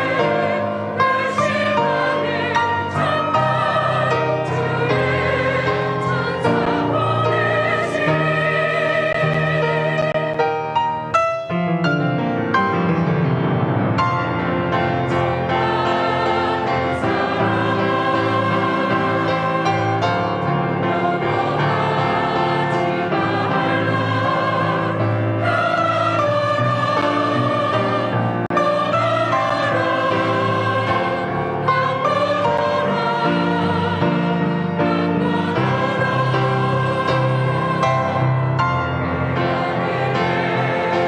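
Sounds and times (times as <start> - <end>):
choir singing sustained chords: 0.0 - 10.8, 12.8 - 41.0.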